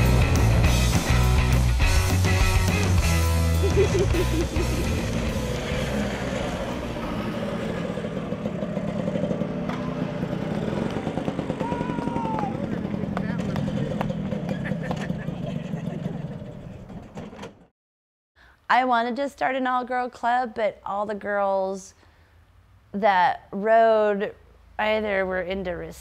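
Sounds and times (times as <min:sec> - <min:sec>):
two-stroke scooter engines passing: 0:00.0 - 0:01.6, 0:03.0 - 0:17.6.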